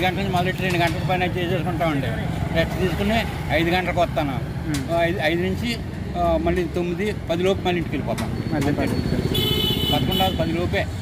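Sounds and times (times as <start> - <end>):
passing street traffic rumble: 0.0 - 11.0
vehicle horn: 9.3 - 10.4.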